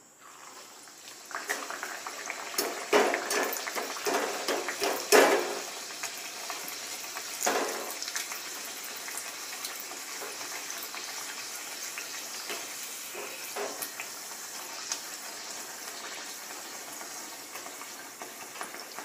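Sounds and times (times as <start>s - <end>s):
pastry sizzling in hot oil: 0.0s - 19.0s.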